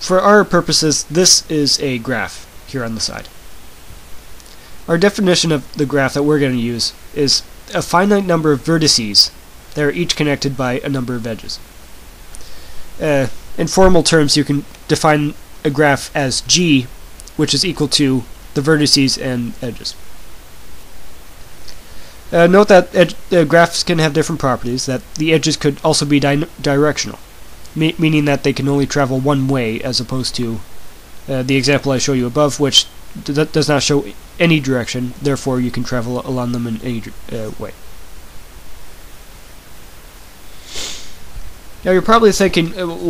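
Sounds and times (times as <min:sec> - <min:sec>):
faint low hum: 0:00.0 - 0:40.6, 0:41.2 - 0:43.0
steady microphone hiss: 0:00.0 - 0:43.0.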